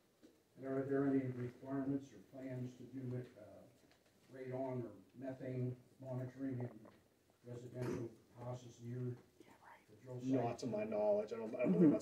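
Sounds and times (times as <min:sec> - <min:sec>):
quiet indistinct speech: 0:00.6 - 0:12.0.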